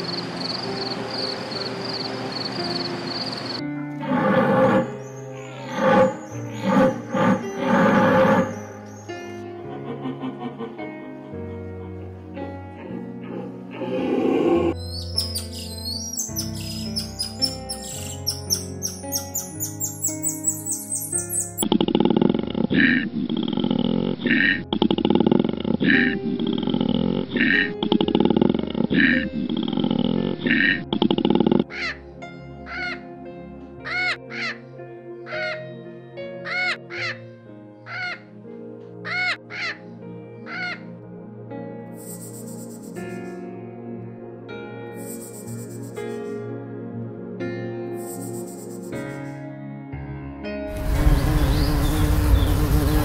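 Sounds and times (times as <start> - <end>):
soft background music: 0.0 - 53.0
clear bird calls: 14.6 - 21.6, 42.0 - 43.0, 51.0 - 53.0
rapid high bird chirping: 14.8 - 21.6, 42.0 - 43.0, 45.0 - 46.0, 48.0 - 48.9, 51.0 - 53.0
harsh caw-like bird calls: 31.7 - 32.1, 32.7 - 33.0, 33.8 - 34.6, 35.3 - 35.6, 36.4 - 37.2, 37.8 - 38.3, 39.0 - 39.9, 40.5 - 40.9.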